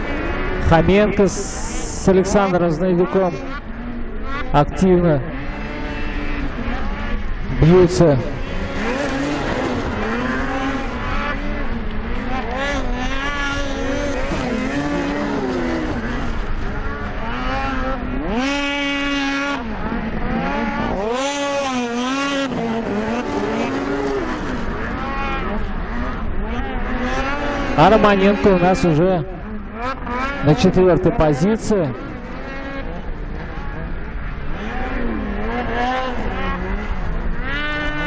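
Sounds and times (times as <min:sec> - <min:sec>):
snowmobile engines revving: 0:00.0 - 0:38.0.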